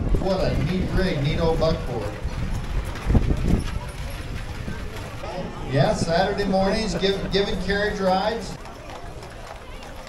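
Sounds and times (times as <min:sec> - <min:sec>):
horse hooves clip-clopping on pavement: 0:00.0 - 0:10.0.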